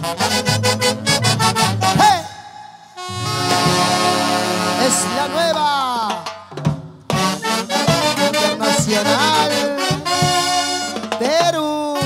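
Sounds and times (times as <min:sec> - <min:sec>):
drum beats: 0:00.0 - 0:12.0
folk band playing: 0:00.0 - 0:12.0.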